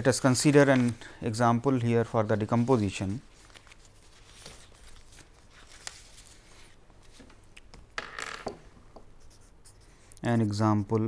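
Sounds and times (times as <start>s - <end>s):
paper rustling: 0.4s - 1.0s, 2.1s - 7.4s.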